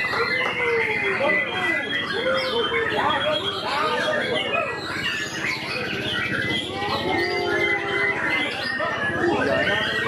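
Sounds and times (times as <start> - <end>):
bird singing whistles and trills: 0.0 - 10.0
crowd chatter: 0.0 - 10.0.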